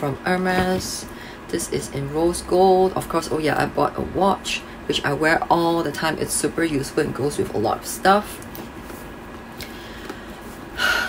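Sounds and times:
woman gasping: 9.6s - 11.0s.

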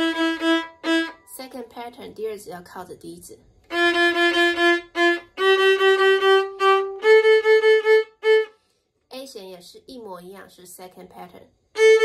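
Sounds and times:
solo violin playing a scale: 0.0s - 1.3s, 3.6s - 8.6s, 11.7s - 12.0s
woman talking: 1.2s - 3.4s, 9.1s - 11.5s.

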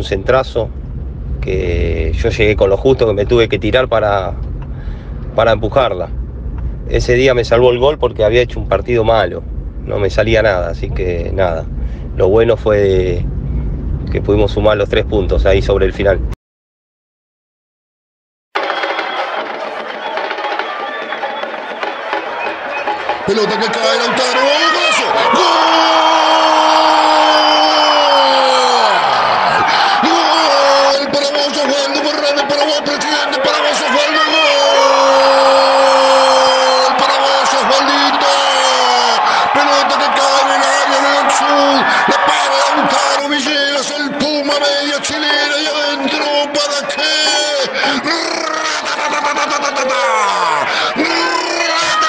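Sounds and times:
crowd noise: 18.6s - 52.0s
commentator shouting: 23.3s - 29.0s, 29.7s - 52.0s.

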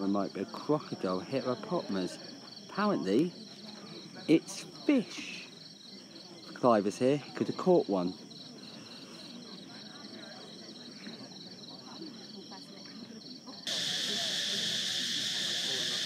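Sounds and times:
dense insect chorus: 0.0s - 12.6s, 13.2s - 16.0s
crickets chirping: 0.0s - 16.0s.

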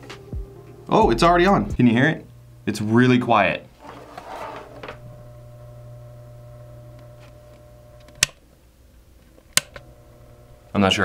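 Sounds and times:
turntable motor humming: 0.0s - 8.5s, 9.3s - 11.0s.

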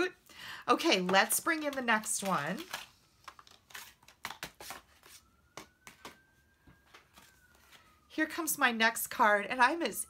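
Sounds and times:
cards tapping and rustling: 1.0s - 6.2s.

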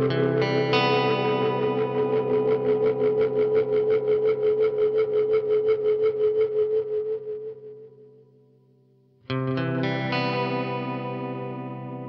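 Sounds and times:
electric guitar chord with pulsing delay: 0.0s - 8.0s.

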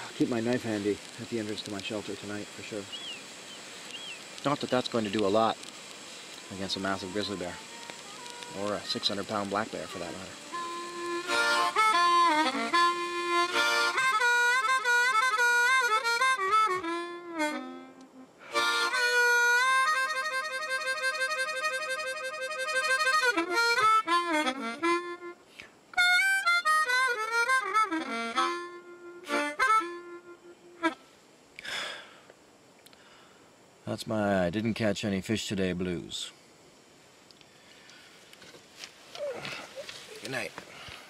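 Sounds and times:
harmonica playing slow blues: 5.4s - 31.2s.

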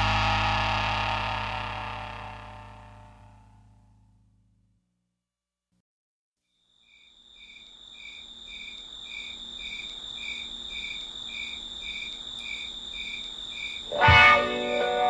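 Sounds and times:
steady high tone: 0.0s - 3.5s, 13.9s - 15.0s
electric guitar chord: 0.0s - 3.6s, 13.9s - 15.0s
rock band playing: 14.0s - 15.0s.

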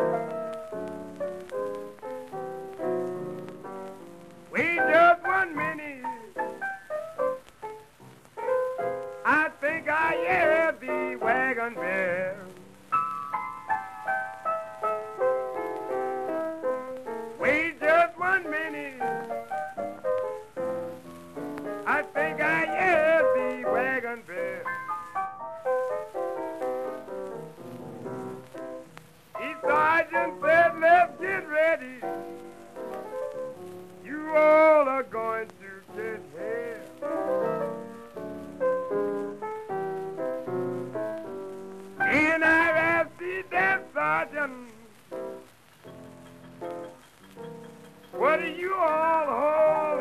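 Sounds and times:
blues piano: 0.0s - 50.0s
man singing wordless notes: 4.5s - 6.6s, 9.2s - 12.8s, 17.3s - 19.4s, 21.7s - 24.8s, 29.4s - 32.4s, 34.0s - 37.8s, 42.0s - 45.2s, 48.0s - 50.0s.

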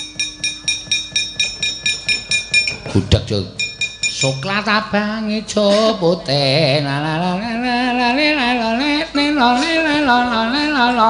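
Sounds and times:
gamelan metal percussion clinking: 0.0s - 4.7s
person singing: 4.2s - 11.0s.

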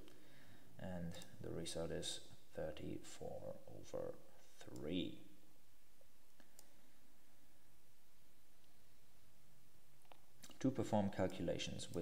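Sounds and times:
low steady hiss: 0.0s - 12.0s
computer mouse clicks: 1.1s - 1.4s, 6.3s - 6.8s.

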